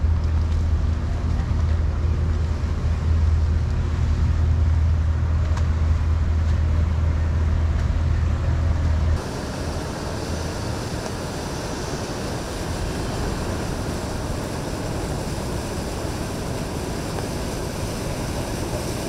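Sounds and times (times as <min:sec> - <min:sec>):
boat engines droning: 0:00.0 - 0:19.0
boat wake rushing: 0:00.0 - 0:19.0.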